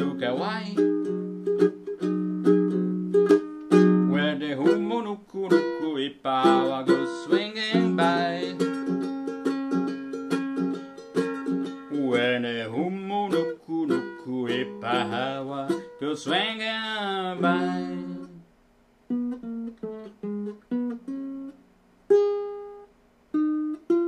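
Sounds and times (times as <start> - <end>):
ukulele strummed chords: 0.0 - 18.5, 19.1 - 24.0.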